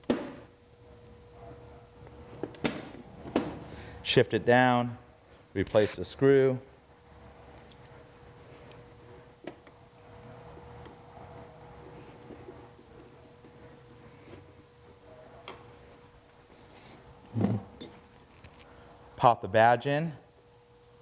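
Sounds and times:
steady faint hum: 0:00.0 - 0:21.0.

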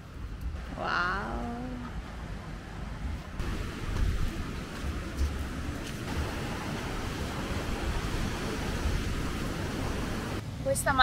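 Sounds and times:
wind gusting on microphone: 0:00.0 - 0:11.0
surf washing onto beach: 0:03.4 - 0:10.4.

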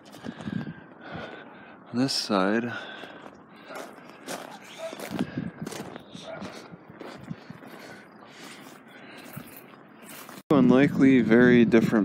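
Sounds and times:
footsteps: 0:02.9 - 0:10.4.

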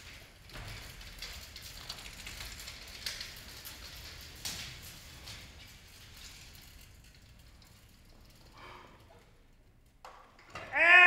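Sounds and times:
metal bed frame and casters rattling: 0:00.0 - 0:10.8.

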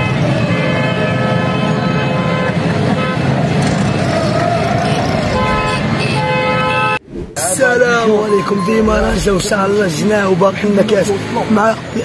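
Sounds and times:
car horns honking: 0:00.1 - 0:07.0
traffic rumble: 0:02.5 - 0:12.0
crowd noise: 0:03.5 - 0:10.0.

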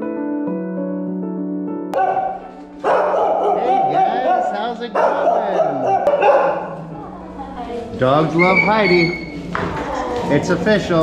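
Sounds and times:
background music: 0:00.0 - 0:11.0
dogs barking and yipping: 0:02.0 - 0:06.9.

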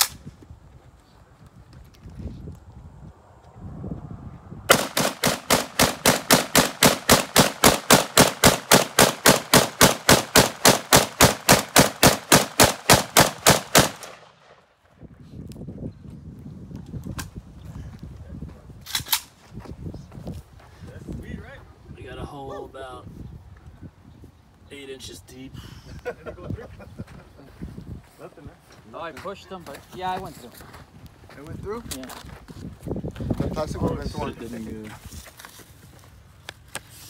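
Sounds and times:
rifle firing rapid shots: 0:04.7 - 0:14.5.

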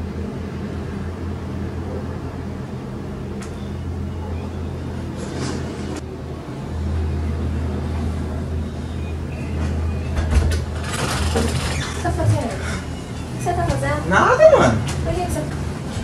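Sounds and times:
heavy vehicle rumbling by: 0:00.0 - 0:16.0.

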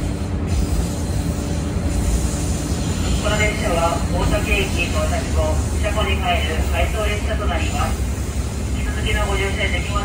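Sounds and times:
railcar cabin rumble: 0:00.0 - 0:10.0.

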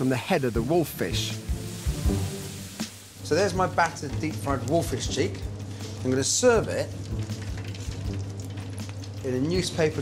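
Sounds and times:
hot oil sizzling and crackling: 0:00.0 - 0:10.0.

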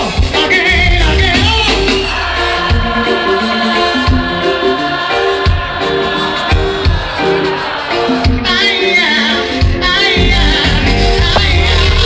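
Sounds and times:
bass: 0:00.0 - 0:07.0, 0:08.2 - 0:12.0
voices singing in harmony: 0:00.8 - 0:12.0.

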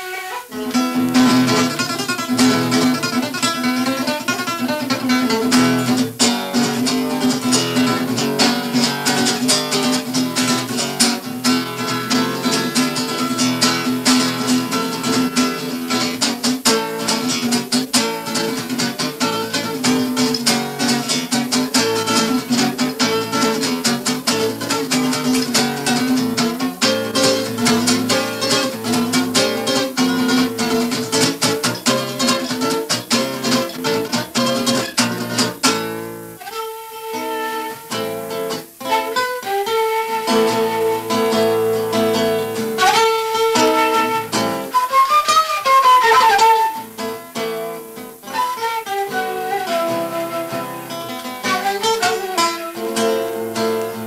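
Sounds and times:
acoustic guitar strumming: 0:00.0 - 0:54.0
end-blown flute melody: 0:43.6 - 0:46.9.

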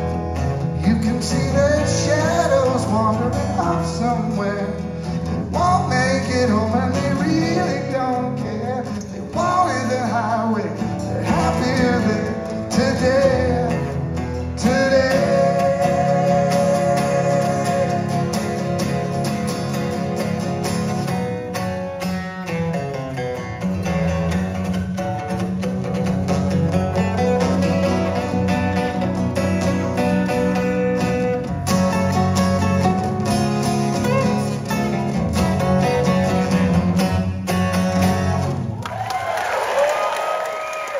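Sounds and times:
two acoustic guitars playing: 0:00.0 - 0:39.4.

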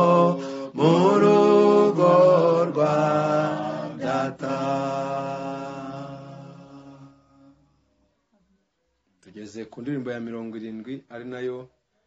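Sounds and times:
man singing chant-like notes: 0:00.0 - 0:03.4.

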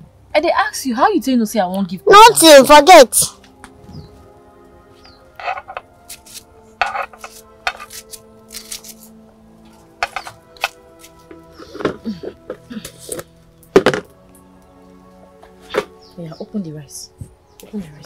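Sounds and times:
soft background music: 0:00.0 - 0:18.0
pots and dishes clinking: 0:06.8 - 0:08.1, 0:10.0 - 0:10.7.

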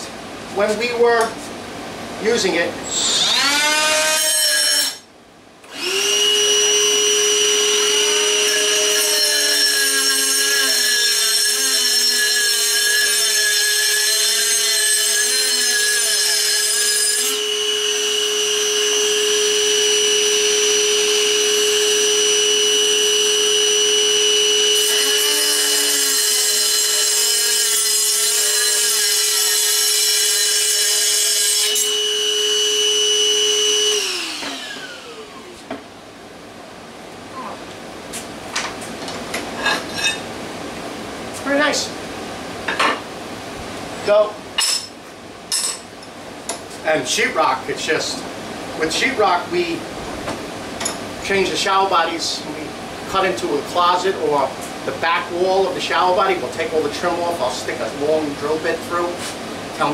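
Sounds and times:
cutoff saw whining: 0:02.8 - 0:05.0, 0:05.6 - 0:28.8, 0:31.0 - 0:35.7
saw winding down: 0:02.9 - 0:05.0, 0:05.7 - 0:27.2, 0:30.8 - 0:35.6
saw wheel grinding tile: 0:05.7 - 0:19.2, 0:20.1 - 0:32.1.

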